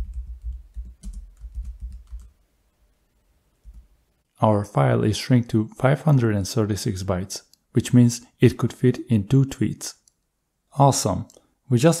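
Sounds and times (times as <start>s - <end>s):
typing on computer keyboard: 0.0s - 2.3s.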